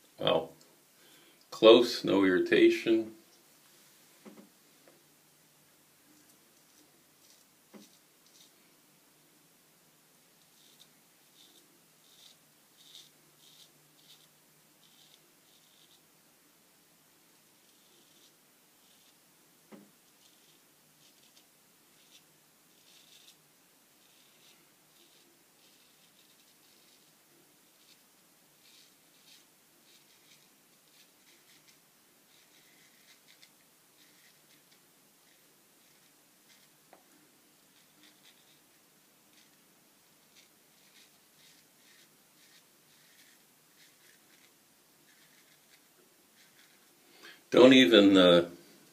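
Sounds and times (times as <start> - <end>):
razor scratching through whiskers: 6.6 - 8.6, 10.4 - 16.1, 17.5 - 19.2, 20.0 - 36.8, 37.6 - 39.6, 40.2 - 47.0.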